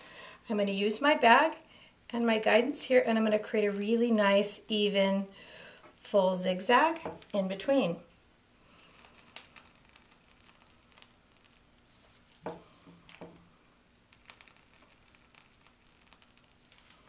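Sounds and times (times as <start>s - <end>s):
piping bag crinkling and clicking: 6.7s - 7.7s, 8.8s - 17.0s.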